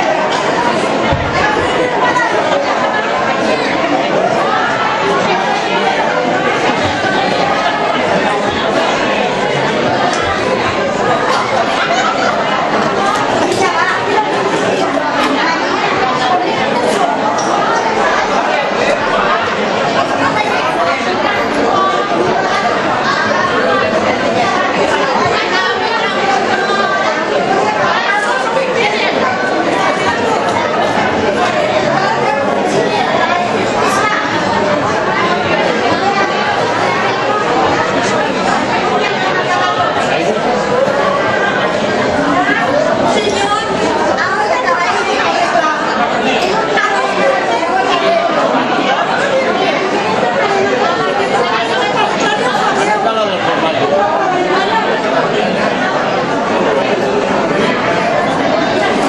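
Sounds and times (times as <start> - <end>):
crowd chatter in a large hall: 0.0 - 59.0.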